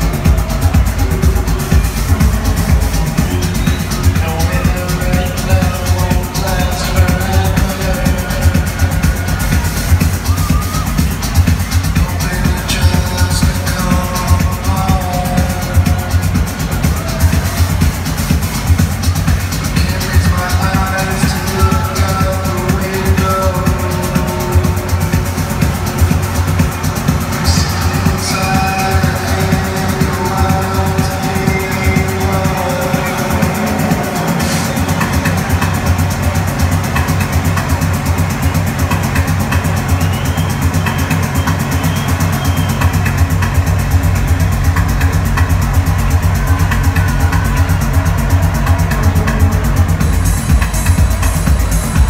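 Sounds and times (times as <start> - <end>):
driving bass beat: 0.0 - 52.0
techno music over sound system: 0.0 - 52.0.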